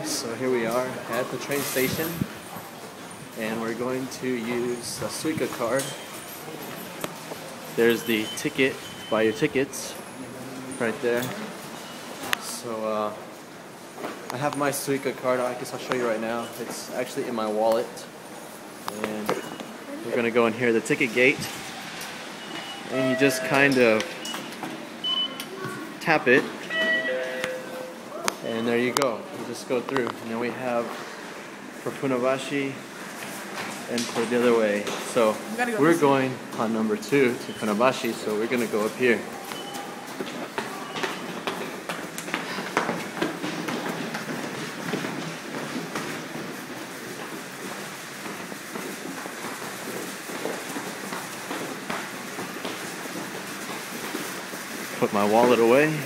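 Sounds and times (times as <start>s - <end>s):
station concourse background noise: 0.0s - 56.0s
ticket gate electronic beeps: 7.8s - 9.7s, 21.4s - 25.5s, 26.6s - 28.9s, 37.3s - 38.0s, 39.4s - 40.0s
footsteps on concrete stairs: 37.8s - 55.1s.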